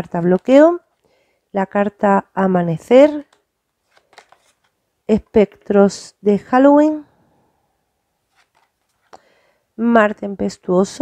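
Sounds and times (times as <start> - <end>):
cards rustling: 3.1 - 4.8, 8.3 - 9.2.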